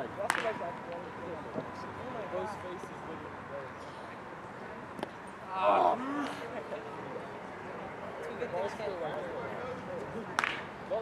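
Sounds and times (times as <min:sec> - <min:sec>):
background voices chattering: 0:00.0 - 0:11.0
bat cracking a ball: 0:00.3 - 0:00.5, 0:10.4 - 0:10.7.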